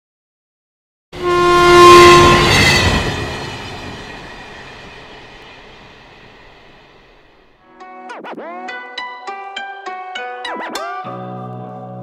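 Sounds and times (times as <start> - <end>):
train horn blowing: 1.2 - 5.9
train rumble: 1.2 - 7.6.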